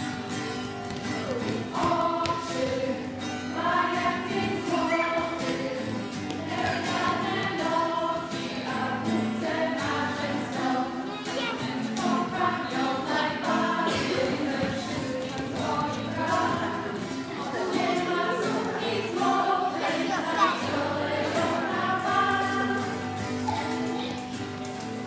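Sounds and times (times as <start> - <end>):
adults and children singing: 0.0 - 25.0
strummed acoustic guitar: 0.0 - 25.0.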